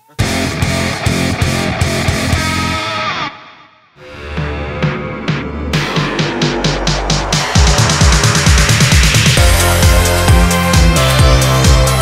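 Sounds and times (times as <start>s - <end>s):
falling sweep: 4.0s - 10.2s
background music with steady beat: 4.2s - 12.0s.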